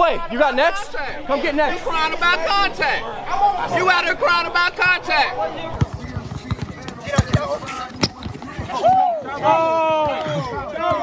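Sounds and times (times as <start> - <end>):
basketball bouncing on hard court: 5.8 - 8.7.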